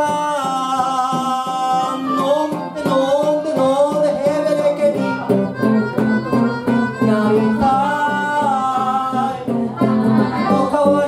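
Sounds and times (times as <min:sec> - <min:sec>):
strummed guitar: 0:00.0 - 0:11.0
blues harmonica bending notes: 0:00.6 - 0:11.0.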